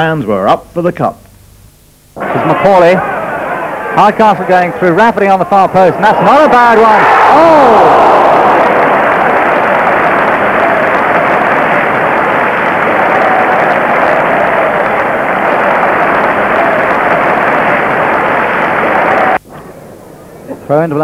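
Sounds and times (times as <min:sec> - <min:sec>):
football crowd roaring: 0:02.2 - 0:19.4.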